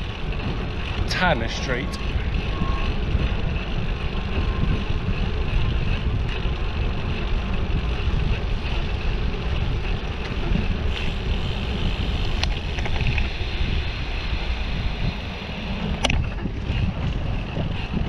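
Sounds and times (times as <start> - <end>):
wind rumble on microphone: 0.0 - 18.0.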